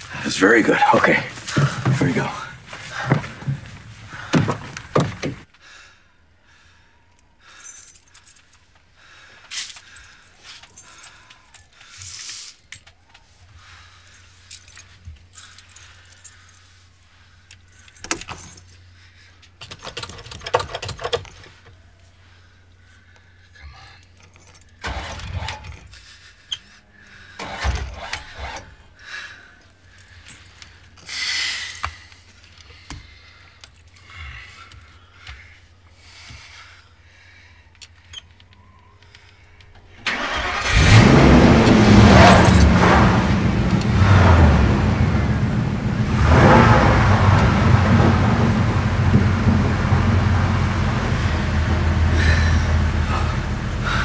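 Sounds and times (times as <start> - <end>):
clunks and clicks in cab: 4.3 - 5.4, 19.6 - 21.6
keys jangling: 7.5 - 8.8, 9.4 - 13.0, 14.0 - 16.8, 17.5 - 21.8, 24.0 - 26.1, 33.5 - 34.3, 42.2 - 42.7
engine cranking: 19.6 - 21.8, 24.1 - 26.0, 27.4 - 28.9, 39.7 - 54.0
engine running hum: 40.1 - 54.0.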